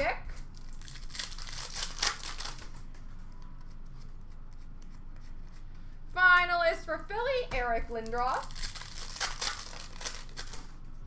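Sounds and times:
trading cards rustling and scraping: 7.8s - 10.7s.

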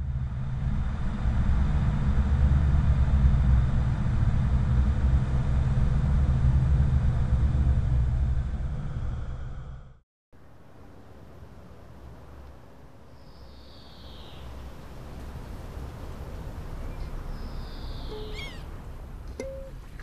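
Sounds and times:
deep steady rumble: 0.0s - 10.0s.

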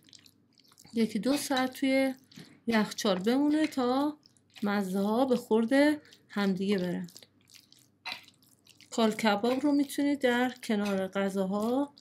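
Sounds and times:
spoon stirring wet mixture: 0.0s - 12.0s.

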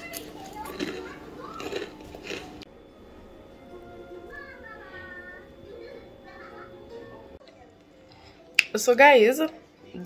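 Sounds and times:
snack crunching: 0.0s - 2.6s
faint background music: 0.0s - 10.0s.

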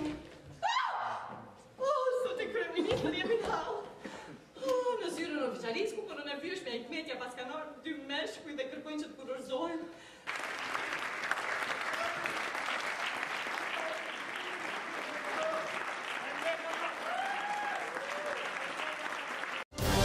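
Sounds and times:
audience applauding: 10.2s - 19.9s.

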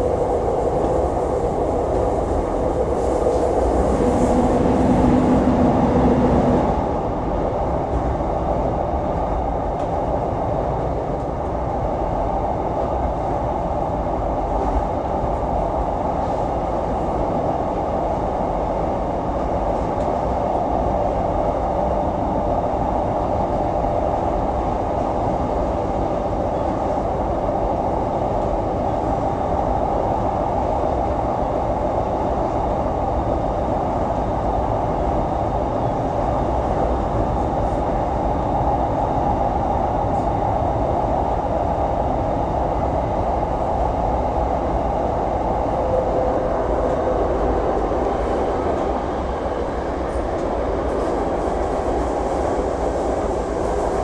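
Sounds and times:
train wheels rumbling on track: 0.0s - 54.0s.

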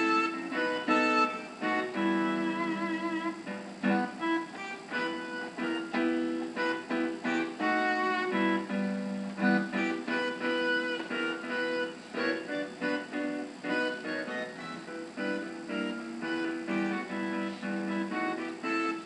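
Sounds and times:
solo piano melody with chords: 0.0s - 19.0s.

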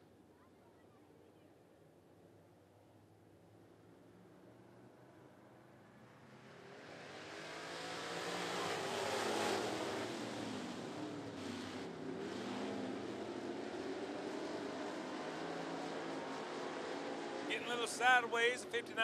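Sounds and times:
stock car engines racing: 5.9s - 19.0s.

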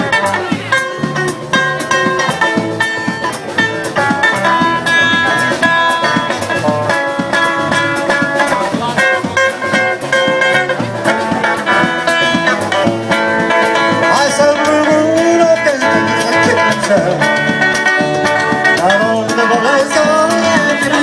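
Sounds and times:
bass line: 0.0s - 21.0s
drum beat: 0.0s - 21.0s
guitar notes: 0.0s - 21.0s.

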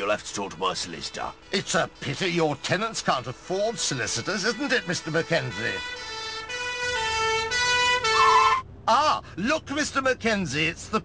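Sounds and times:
two-tone police siren: 4.6s - 8.6s.

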